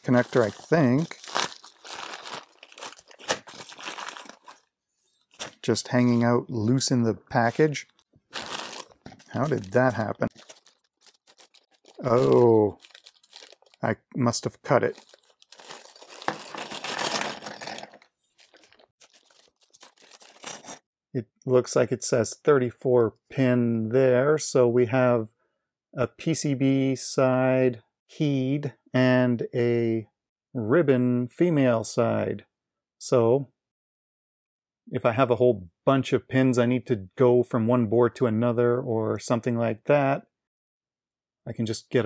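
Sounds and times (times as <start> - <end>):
plastic packaging crinkling: 0.0 - 6.3, 7.4 - 13.9, 14.8 - 20.8.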